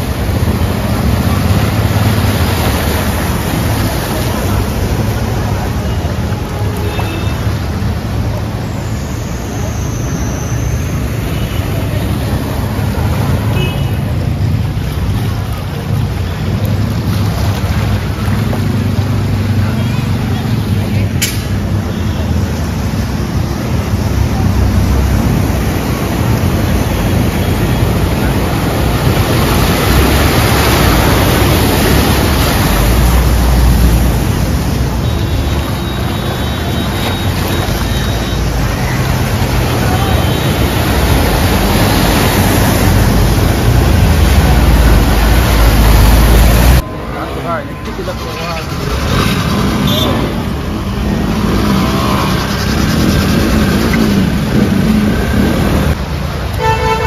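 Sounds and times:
vehicle engines running: 0:00.0 - 0:57.0
water surging and splashing: 0:00.0 - 0:57.0.

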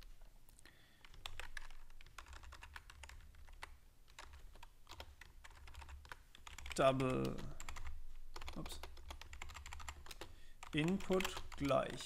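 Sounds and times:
typing on computer keyboard: 0:01.0 - 0:12.0.

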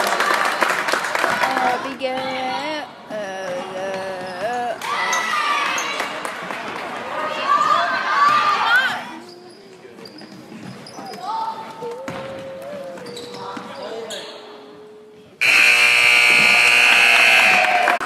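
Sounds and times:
scoreboard buzzer: 0:15.4 - 0:18.0.

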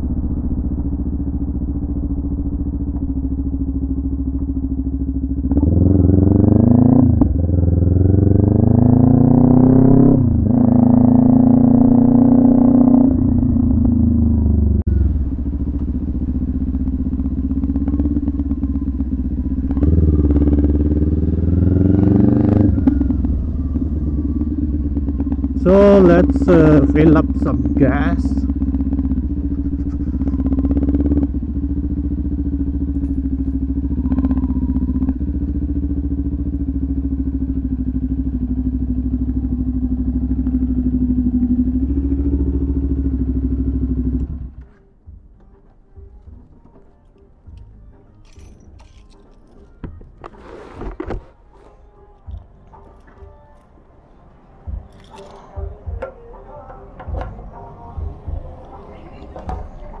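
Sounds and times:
motorcycle engine idling: 0:00.0 - 0:50.2.

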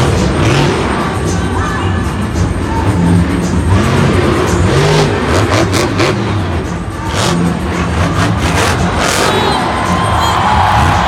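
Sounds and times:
crowd: 0:00.0 - 0:11.0
truck engines revving: 0:00.0 - 0:11.0.

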